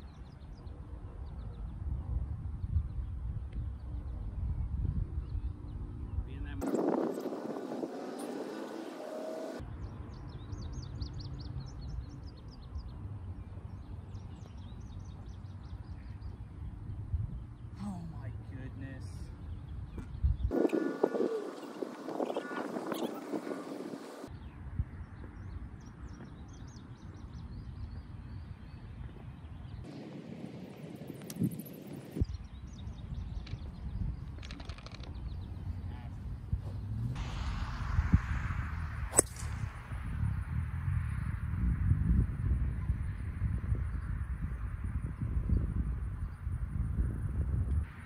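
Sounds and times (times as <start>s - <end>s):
wind rumbling on microphone: 0.0s - 48.0s
golf club striking ball: 39.1s - 39.7s.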